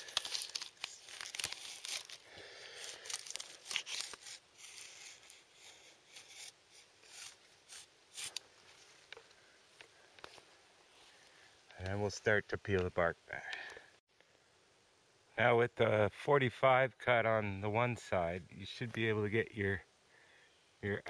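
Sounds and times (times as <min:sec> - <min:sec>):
knife scratching bark: 0:02.8 - 0:08.4.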